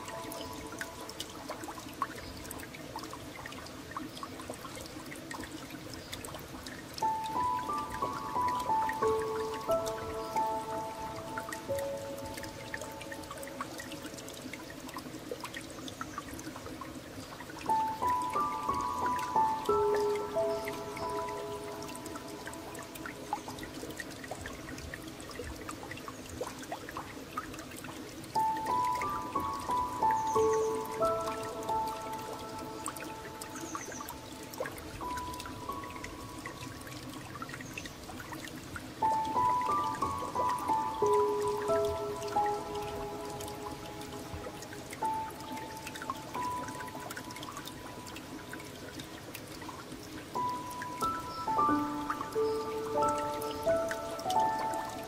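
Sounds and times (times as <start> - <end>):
gentle piano phrase: 0.0 - 2.6, 7.0 - 15.0, 17.6 - 25.0, 28.3 - 37.4, 38.9 - 49.0, 50.2 - 55.0
flowing water: 0.0 - 55.0
light water drips: 0.0 - 55.0.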